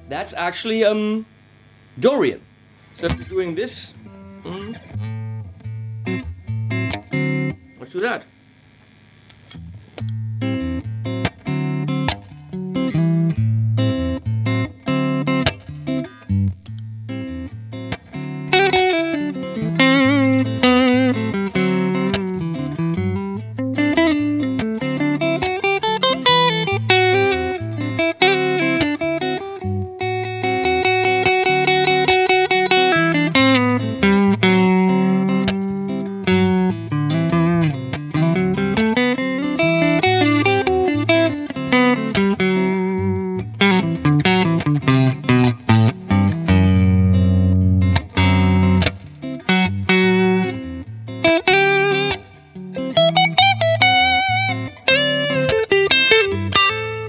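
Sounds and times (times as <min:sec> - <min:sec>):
electric guitar melody: 0:00.0 - 0:57.0.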